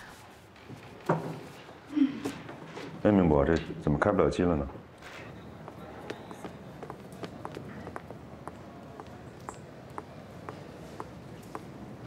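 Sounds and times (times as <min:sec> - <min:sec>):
footsteps of heels on hard floor: 0:05.6 - 0:11.6.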